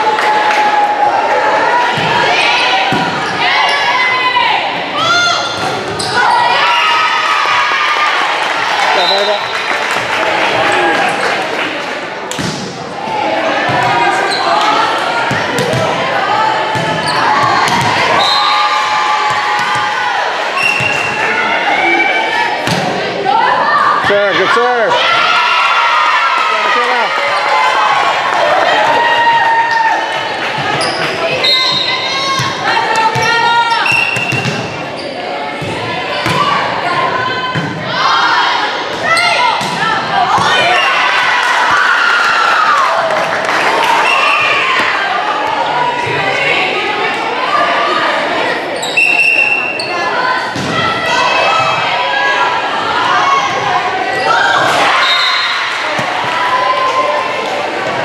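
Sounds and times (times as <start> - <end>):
players shouting: 0.0 - 11.4, 12.9 - 58.0
spectators chattering: 0.0 - 58.0
volleyball hit and bouncing: 1.9 - 3.2, 12.3 - 12.8, 13.7 - 16.0, 16.7 - 18.2, 19.3 - 20.0, 22.6 - 23.1, 32.3 - 34.8, 35.6 - 36.6, 38.9 - 40.8, 50.5 - 51.0, 55.7 - 56.4.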